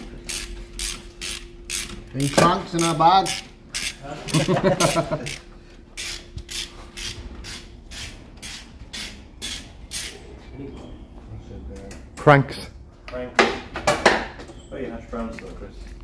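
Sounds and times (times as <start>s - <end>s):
socket ratchet clicking: 0.3s - 4.5s, 6.0s - 10.1s
person laughing: 4.1s - 5.5s.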